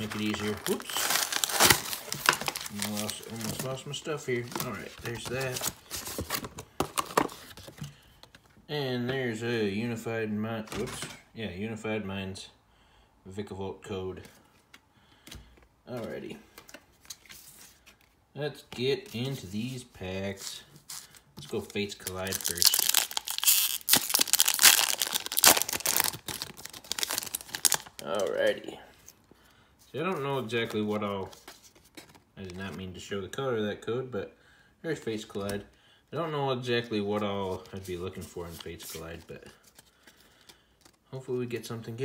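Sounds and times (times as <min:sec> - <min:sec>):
foil wrapper crinkling: 0:00.0 - 0:06.4, 0:20.9 - 0:28.4
plastic blister pack crackling: 0:00.0 - 0:07.4, 0:21.4 - 0:28.6.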